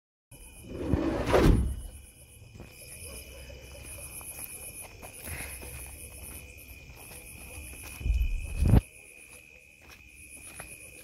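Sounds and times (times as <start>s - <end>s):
crickets chirping: 0.3s - 11.0s.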